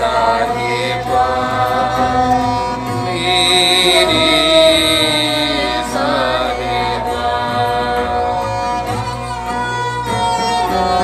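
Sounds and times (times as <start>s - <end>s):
sustained bowed strings: 0.0s - 11.0s.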